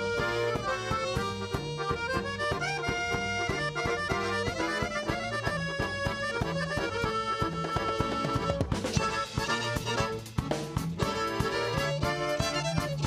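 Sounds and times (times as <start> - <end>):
accordion melody: 0.0 - 13.0
steady drum beat: 0.0 - 13.0.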